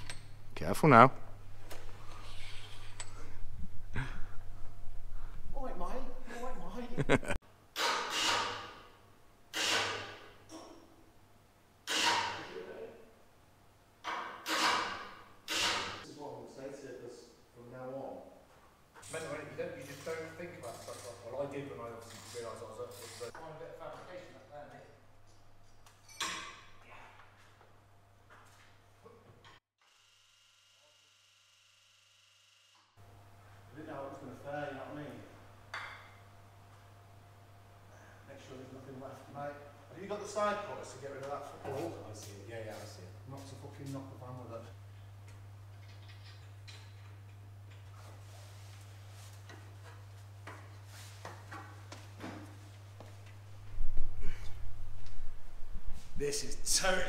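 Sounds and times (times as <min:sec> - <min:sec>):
steady low hum: 0:00.0 - 0:07.4, 0:33.0 - 0:57.0.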